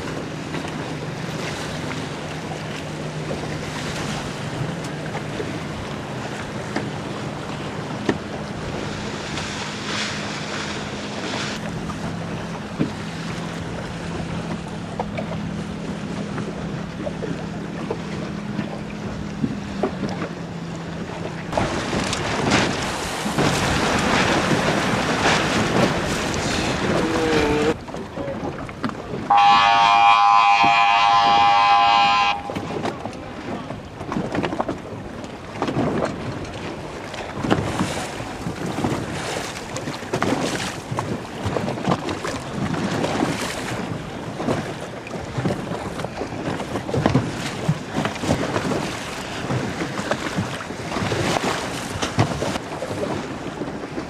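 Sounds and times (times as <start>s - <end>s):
water rushing around boat: 0.0s - 54.0s
loud horn blast: 29.3s - 32.9s
wind buffeting microphone: 30.6s - 54.0s.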